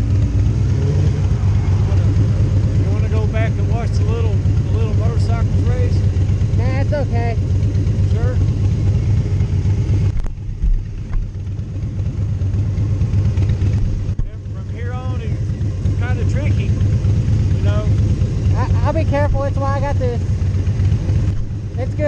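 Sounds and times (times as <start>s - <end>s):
motorcycle engines idling: 0.0s - 22.0s
man talking: 2.8s - 6.1s, 8.0s - 8.6s, 14.2s - 16.8s, 17.5s - 18.0s.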